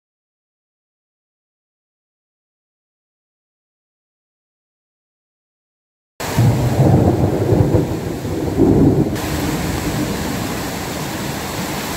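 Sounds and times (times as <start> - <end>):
heavy rain: 6.2 - 11.9
thunder rumbling: 6.2 - 11.9.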